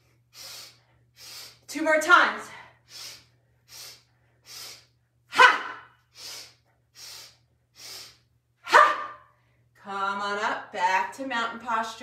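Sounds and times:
woman sniffing through nose: 0:00.3 - 0:01.7, 0:02.9 - 0:04.9, 0:06.1 - 0:08.2.

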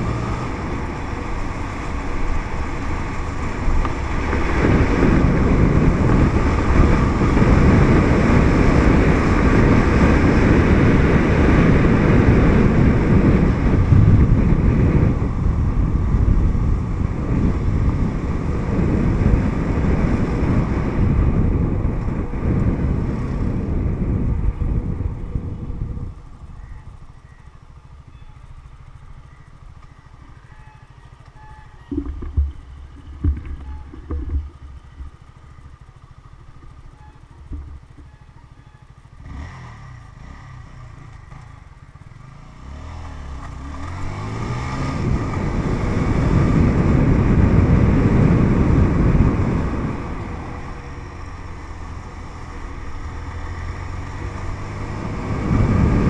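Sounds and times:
wind noise on microphone: 0:00.0 - 0:27.5, 0:30.0 - 0:41.8, 0:42.6 - 0:56.0
motorcycle engine: 0:00.0 - 0:56.0.

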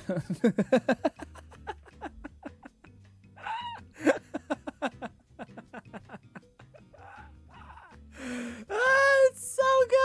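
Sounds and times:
man laughing: 0:00.0 - 0:08.1.

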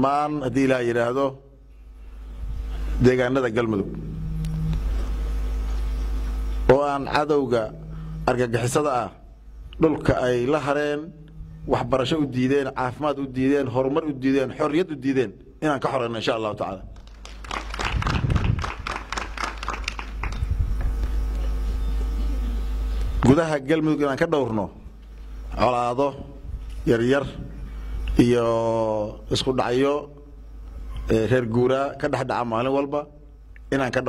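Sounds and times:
steady low hum: 0:00.0 - 0:34.0
faint steady tone: 0:03.8 - 0:14.0
audience clapping: 0:17.0 - 0:21.1.

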